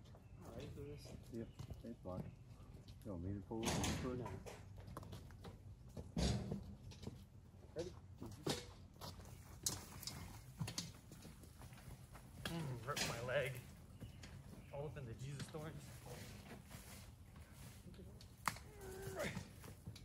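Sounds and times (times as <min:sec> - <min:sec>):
wheelbarrow knocks and rattles: 0:06.0 - 0:07.1, 0:08.2 - 0:13.6.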